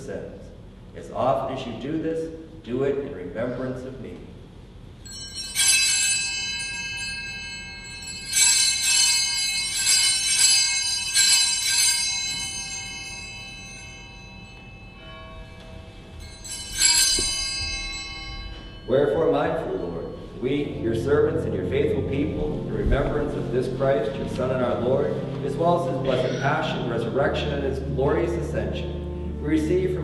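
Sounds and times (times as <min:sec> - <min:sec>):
altar bells ringing: 0:05.0 - 0:30.0.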